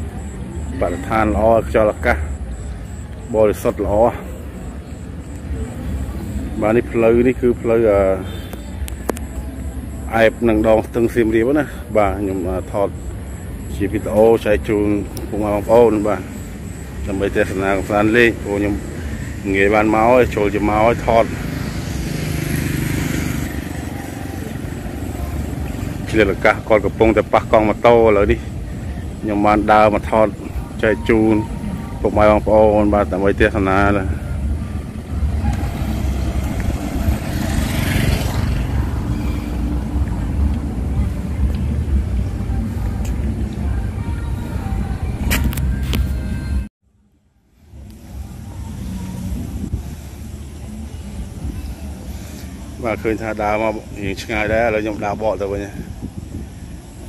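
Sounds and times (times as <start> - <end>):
vehicle engine passing: 0.0 - 46.7
street noise: 0.0 - 57.0
wind on microphone: 47.7 - 57.0.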